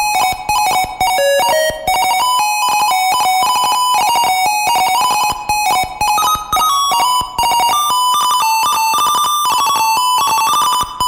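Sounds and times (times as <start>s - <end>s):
small clicks between notes: 0.1s - 11.0s.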